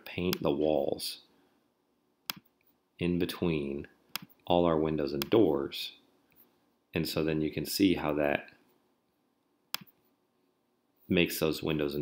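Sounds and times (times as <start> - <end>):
computer mouse click: 4.1 - 4.4, 9.7 - 10.0.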